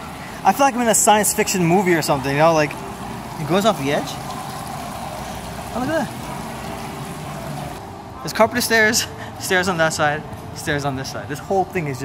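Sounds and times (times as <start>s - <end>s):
fountain water rushing into drain: 0.0s - 7.8s.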